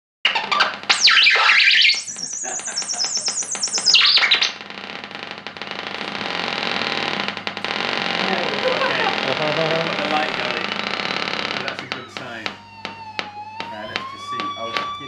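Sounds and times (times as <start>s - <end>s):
electronic synth squealing: 0.2s - 4.6s, 6.1s - 15.0s.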